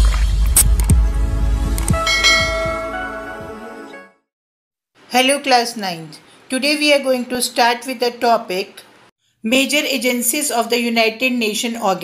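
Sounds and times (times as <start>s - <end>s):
bell-like chime: 2.0s - 3.5s.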